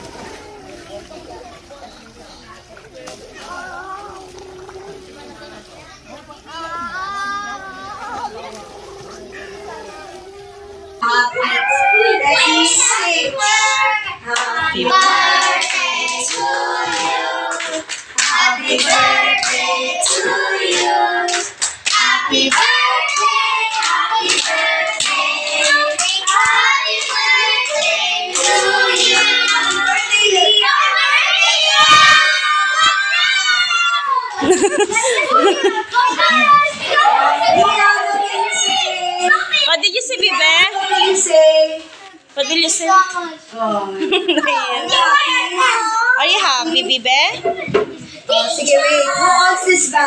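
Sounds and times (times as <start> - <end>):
children calling out: 0.0 - 14.2, 22.4 - 43.4, 44.1 - 46.6
children clapping hands: 14.4 - 30.3.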